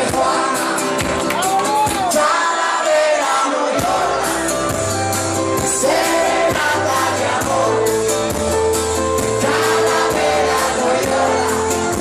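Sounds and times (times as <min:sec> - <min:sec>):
live band playing: 0:00.0 - 0:02.8, 0:03.5 - 0:12.0.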